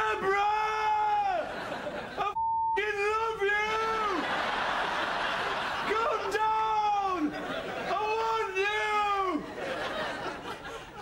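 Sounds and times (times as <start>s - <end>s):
man shouting drunkenly: 0.0s - 1.5s, 2.2s - 4.3s, 5.9s - 9.4s.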